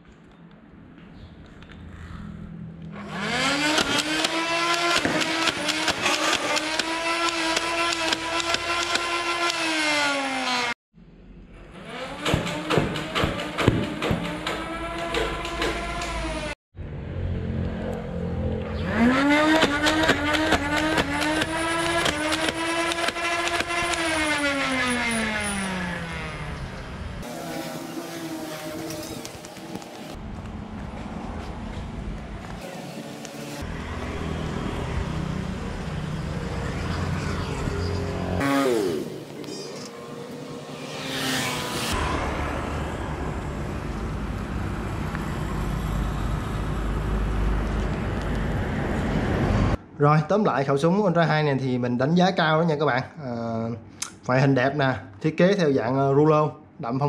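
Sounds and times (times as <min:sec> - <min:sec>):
toy blaster motor whining: 0:18.9 - 0:26.3.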